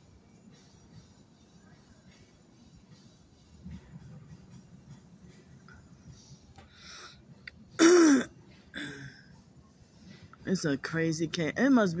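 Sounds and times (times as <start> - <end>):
person clearing throat: 7.8 - 9.1.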